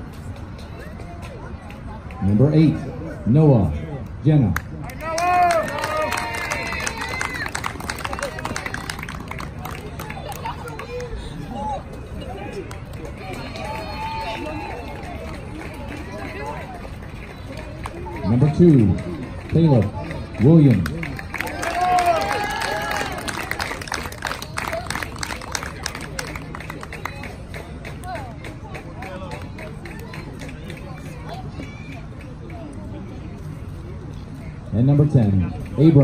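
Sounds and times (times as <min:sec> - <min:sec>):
distant people chattering: 0:00.0 - 0:36.0.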